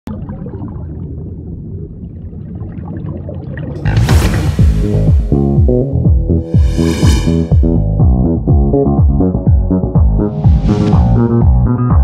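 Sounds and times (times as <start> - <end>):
muffled underwater rumble: 0.1 - 5.3
music: 3.8 - 12.0
loud swoosh: 3.9 - 8.0, 10.2 - 11.6.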